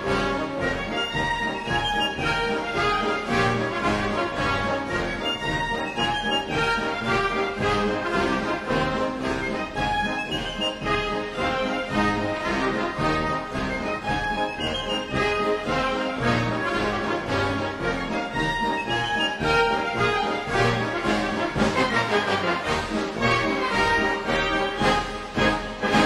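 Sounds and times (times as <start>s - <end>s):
military band playing march: 0.0s - 26.0s.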